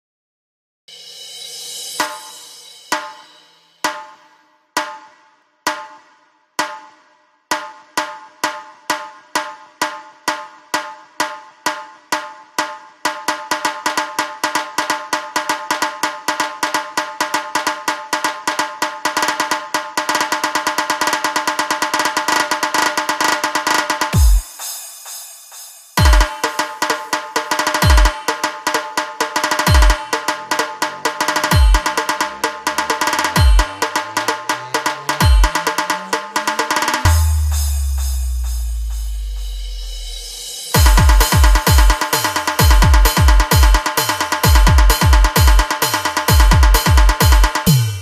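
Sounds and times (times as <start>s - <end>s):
drum strokes ringing: 0.9s - 5.1s, 7.5s - 48.0s.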